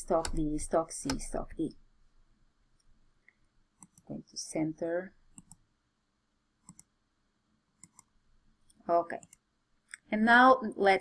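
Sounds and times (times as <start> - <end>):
computer mouse clicks: 0.1 - 1.4, 3.8 - 4.1, 5.3 - 5.7, 6.6 - 7.0, 7.8 - 10.1.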